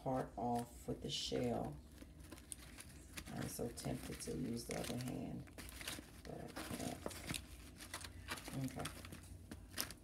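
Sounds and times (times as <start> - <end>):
dry pod shell crackling: 1.4 - 10.0.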